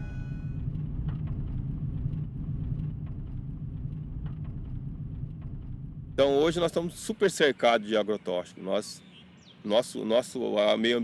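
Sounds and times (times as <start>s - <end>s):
vehicle engine rumble: 0.0s - 7.6s.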